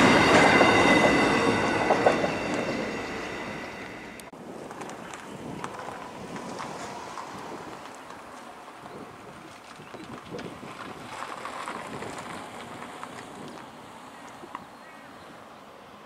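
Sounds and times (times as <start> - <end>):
wind buffeting microphone: 4.4 - 15.4.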